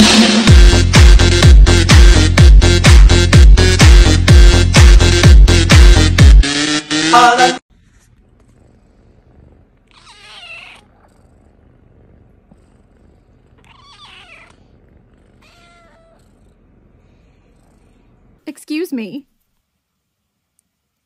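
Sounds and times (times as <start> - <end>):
loud electronic music: 0.0 - 7.6
kittens purring: 7.7 - 18.5
kittens mewing: 8.4 - 11.6, 12.4 - 16.5.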